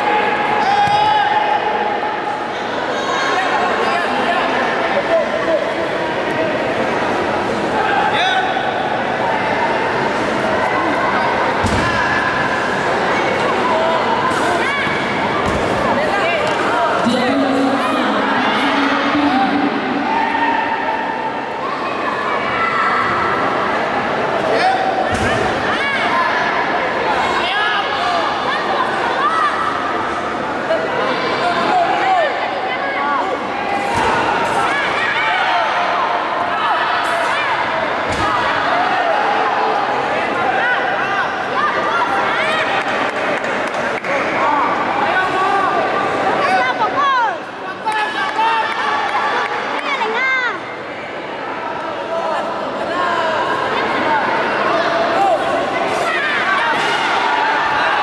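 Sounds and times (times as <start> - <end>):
crowd shouting in a hall: 0.0 - 58.0.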